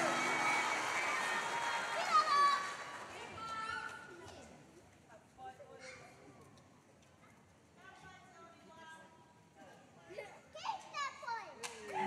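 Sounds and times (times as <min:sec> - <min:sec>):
faint children's voices in hall: 0:01.8 - 0:08.6, 0:09.6 - 0:12.0.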